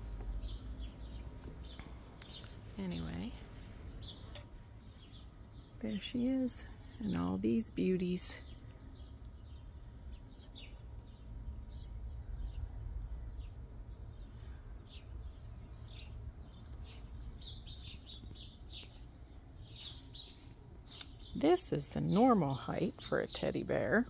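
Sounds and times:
low steady rumble: 0.0s - 24.0s
small birds chirping: 0.0s - 24.0s.

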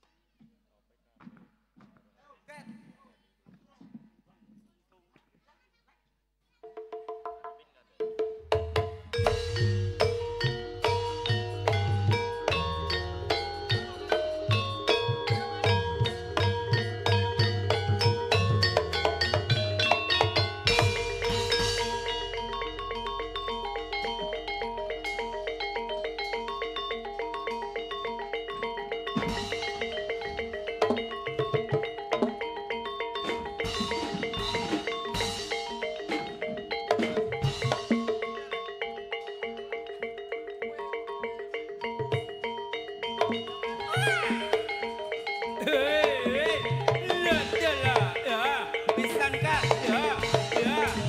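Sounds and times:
gamelan metallophones playing: 8.5s - 51.0s.

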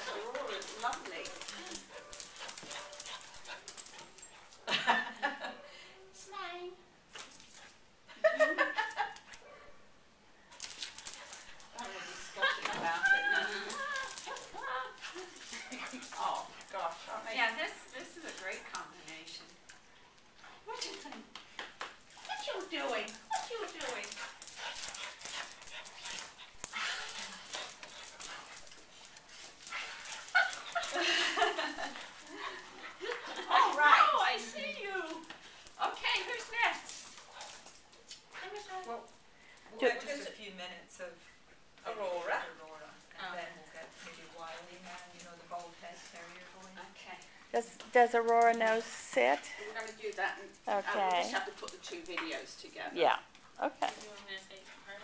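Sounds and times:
dogs panting: 0.0s - 4.9s, 10.5s - 21.0s, 22.0s - 40.1s, 42.0s - 52.5s
paws clicking on vinyl floor: 0.0s - 5.1s, 10.5s - 40.0s, 41.8s - 55.0s.

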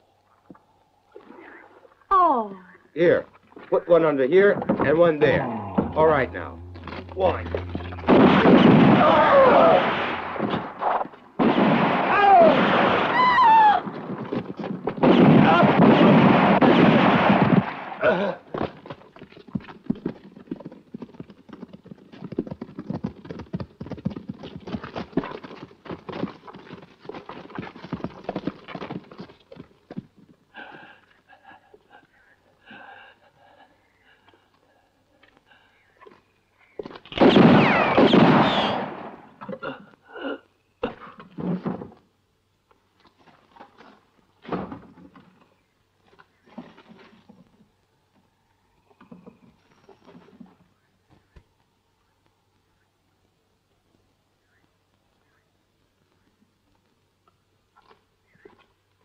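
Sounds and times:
gunfire bursts: 8.1s - 10.8s, 15.0s - 18.0s
people crying out: 8.8s - 10.0s, 12.1s - 13.9s.

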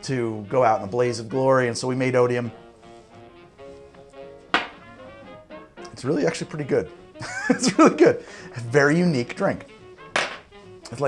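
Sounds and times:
soft background music: 0.0s - 11.0s
glass knocking on wooden bar: 4.6s - 4.8s, 10.2s - 10.5s.

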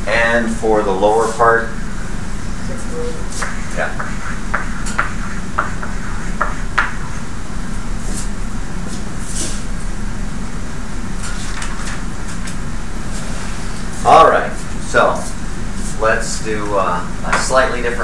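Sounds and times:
classroom room hum: 0.0s - 18.0s.

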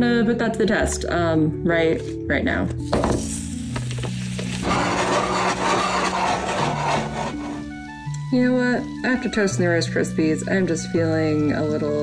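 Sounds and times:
butter sizzling in a frying pan: 3.0s - 6.9s.

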